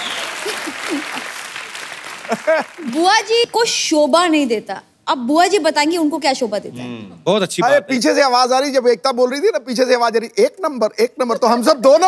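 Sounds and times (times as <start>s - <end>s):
audience applauding: 0.0s - 3.4s.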